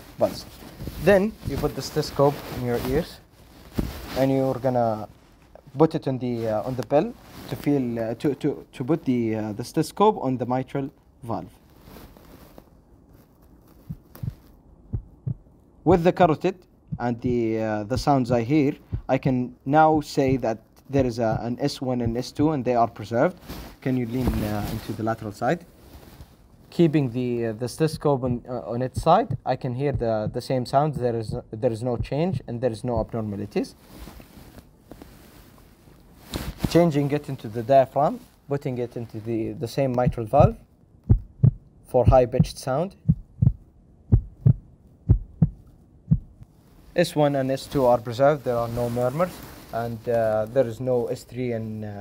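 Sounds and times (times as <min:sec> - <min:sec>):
heartbeat through stethoscope: 0:13.8 - 0:16.1, 0:16.8 - 0:22.6, 0:27.8 - 0:33.2, 0:40.0 - 0:46.4.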